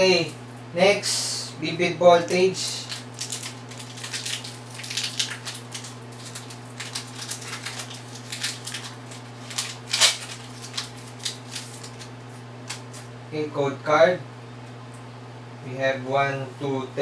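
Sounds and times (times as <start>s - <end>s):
foil wrapper crinkling and tearing: 2.3s - 13.1s.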